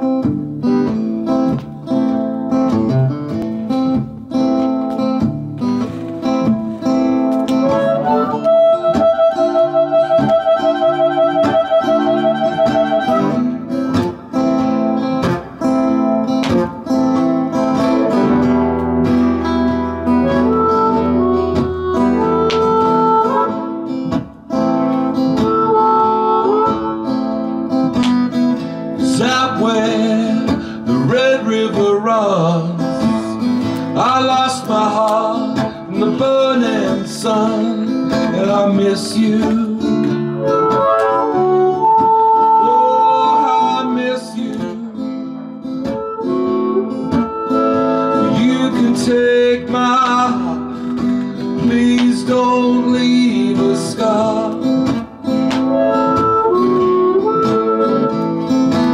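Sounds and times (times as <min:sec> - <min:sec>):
strummed acoustic guitar: 0:00.0 - 0:58.9
harmonica melody: 0:07.0 - 0:15.4, 0:17.5 - 0:29.0, 0:40.2 - 0:44.6, 0:45.6 - 0:51.2, 0:54.8 - 0:58.9.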